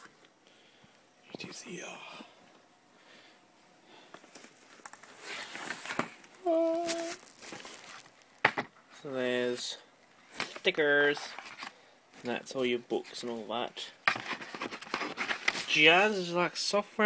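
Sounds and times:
cardboard and paper rustling: 4.3 - 8.7, 10.3 - 12.3, 14.0 - 15.9
person humming briefly: 6.4 - 7.2.

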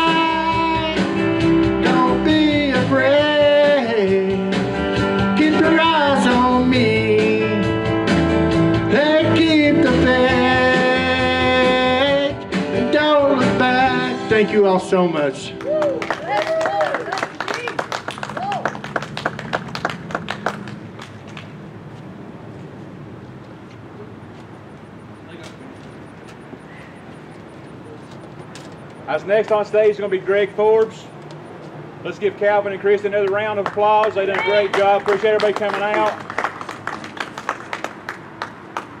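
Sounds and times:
audience applause: 15.6 - 21.5, 33.6 - 39.0.

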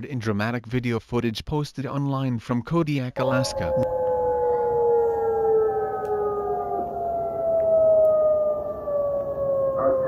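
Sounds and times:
warning siren wailing: 3.2 - 10.0.

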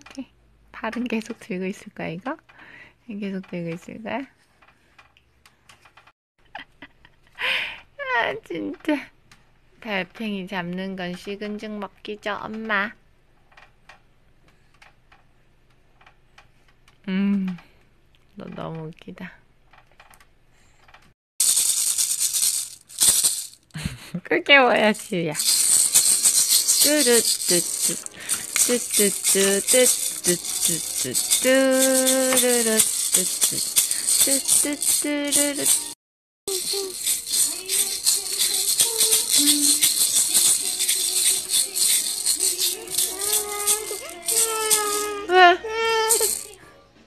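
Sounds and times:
plastic baby rattle shaken: 21.4 - 23.8, 24.9 - 46.6.

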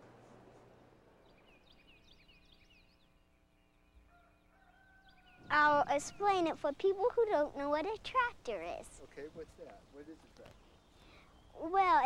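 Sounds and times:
small birds chirping: 0.5 - 12.0.

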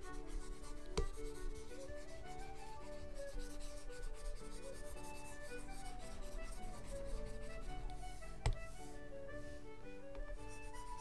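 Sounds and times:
stylus rubbing on drawing tablet: 0.0 - 9.1, 10.2 - 11.0.

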